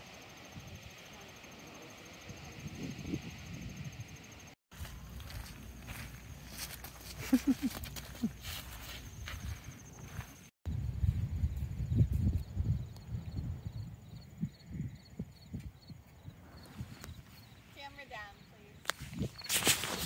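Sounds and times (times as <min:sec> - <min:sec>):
wind buffeting microphone: 0:02.2 - 0:06.1, 0:09.2 - 0:20.0
footsteps on sandy path: 0:04.7 - 0:10.5, 0:18.8 - 0:20.0.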